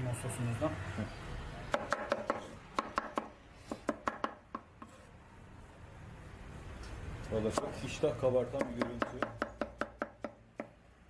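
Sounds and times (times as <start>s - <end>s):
knife chopping on wooden board: 1.7s - 5.0s, 7.5s - 7.8s, 8.5s - 10.8s.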